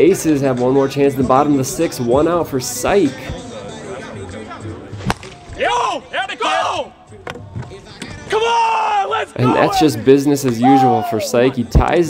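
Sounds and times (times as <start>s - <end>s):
plastic bat hitting ball: 5.0s - 5.5s
players shouting: 5.2s - 7.2s, 8.0s - 11.6s.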